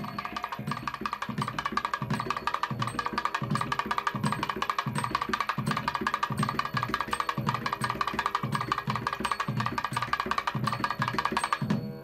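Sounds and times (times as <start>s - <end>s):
drum beating steady rhythm: 0.0s - 12.0s
fast ringing percussion: 0.0s - 12.0s.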